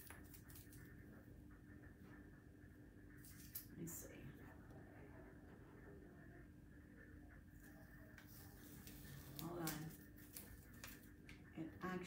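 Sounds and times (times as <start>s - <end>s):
low room hum: 0.0s - 12.0s
tape and paper rustling: 8.2s - 11.1s.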